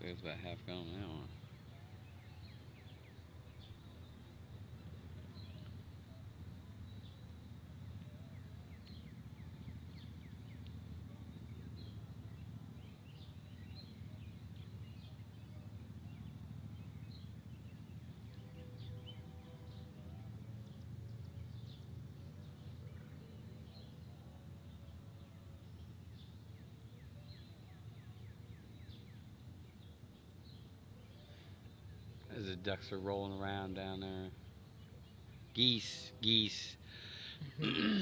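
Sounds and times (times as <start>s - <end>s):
faint steady hum: 0.0s - 38.0s
low steady rumble: 0.0s - 38.0s
small birds chirping: 0.0s - 38.0s.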